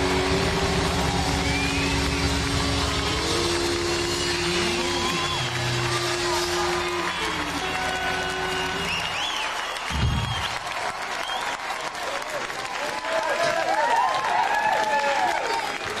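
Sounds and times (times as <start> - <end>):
audience applauding and cheering: 0.0 - 16.0.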